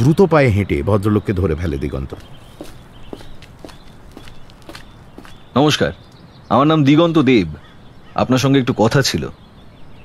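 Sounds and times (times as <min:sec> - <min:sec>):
footsteps walking: 0:02.1 - 0:05.6.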